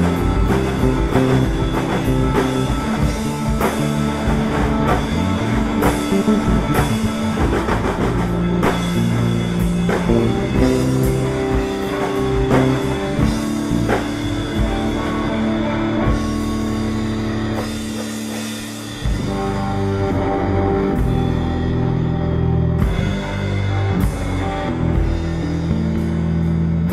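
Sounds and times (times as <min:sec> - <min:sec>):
drum kit with cymbals: 0:00.0 - 0:26.9
electric bass low notes: 0:00.0 - 0:26.9
electric guitar: 0:00.0 - 0:26.9
rock band playing: 0:00.0 - 0:26.9.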